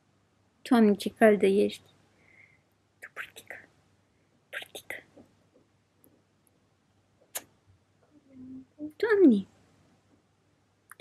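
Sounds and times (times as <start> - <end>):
woman whispering: 3.0 - 3.7, 4.6 - 5.2.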